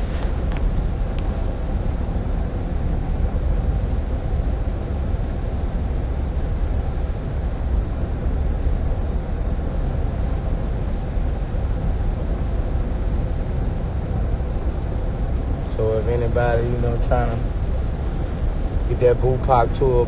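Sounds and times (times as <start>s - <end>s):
vehicle rumble from inside: 0.0s - 20.0s.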